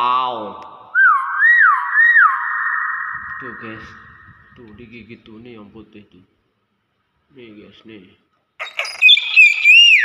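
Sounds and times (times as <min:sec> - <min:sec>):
myna bird calling: 0:01.0 - 0:04.6, 0:08.6 - 0:10.0.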